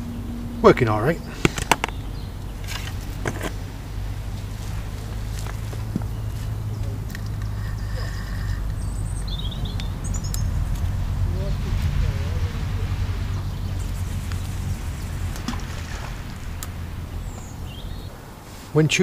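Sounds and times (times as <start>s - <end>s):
small bird chirping: 0.0s - 11.4s, 13.2s - 18.4s
steady low rumble: 0.0s - 18.7s.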